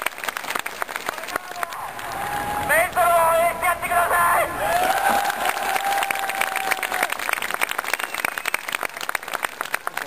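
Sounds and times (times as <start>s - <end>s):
crowd clapping: 0.0s - 3.5s, 4.6s - 10.0s
person shouting long held shout: 1.5s - 7.1s.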